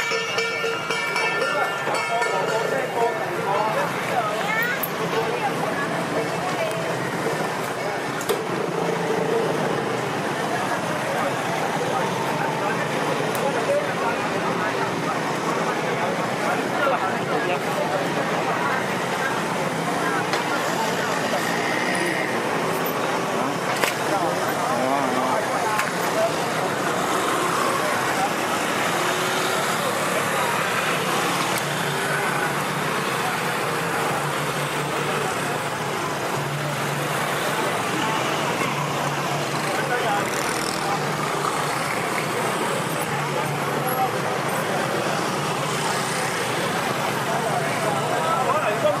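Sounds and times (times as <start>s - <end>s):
people talking: 0.0s - 49.0s
motor scooters passing: 0.3s - 49.0s.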